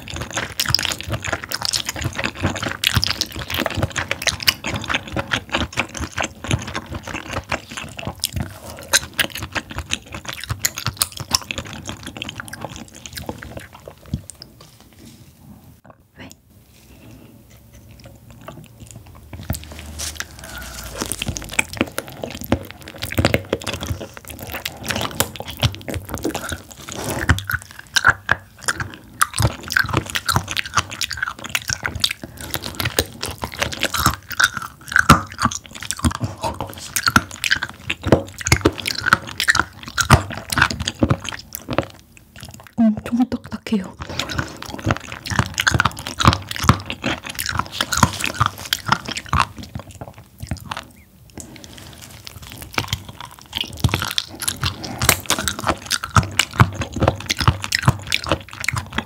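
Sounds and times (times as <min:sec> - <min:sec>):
wet chewing and mouth sounds: 0:00.0 - 0:59.0
crunchy biting: 0:17.2 - 0:42.7, 0:44.0 - 0:59.0.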